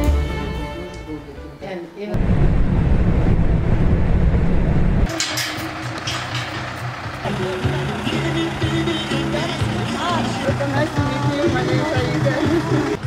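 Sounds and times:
background music: 0.0s - 2.2s, 5.1s - 13.0s
vehicle road rumble: 2.2s - 13.0s.

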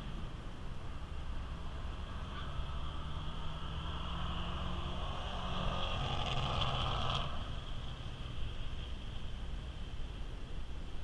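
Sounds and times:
distant drag-racing car engine: 1.2s - 8.0s.

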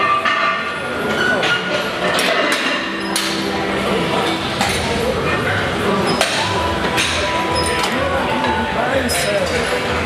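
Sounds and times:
gym background noise: 0.0s - 10.0s.

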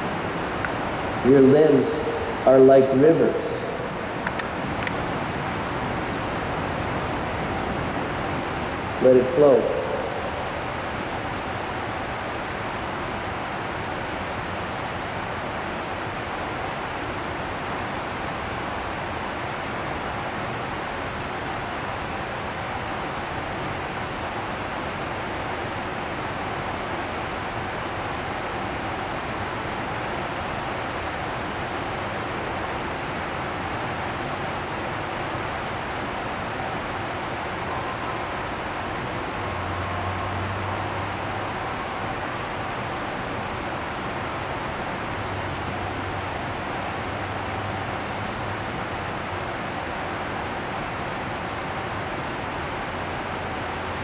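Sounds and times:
blower fans rushing air: 0.0s - 54.0s.

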